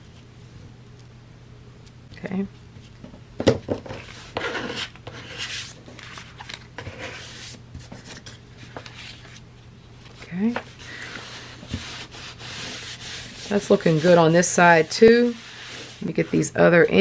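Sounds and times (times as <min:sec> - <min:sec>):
card scraping over fabric and paper: 0:11.0 - 0:16.5.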